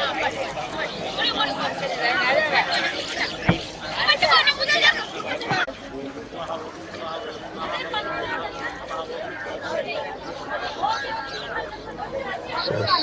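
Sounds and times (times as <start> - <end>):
background chatter of people: 0.0 - 13.0.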